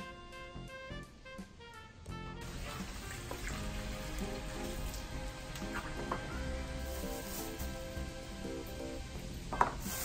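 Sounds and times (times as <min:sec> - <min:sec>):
background music: 0:00.0 - 0:10.0
tap water running into plastic tub: 0:02.4 - 0:08.7, 0:09.4 - 0:10.0.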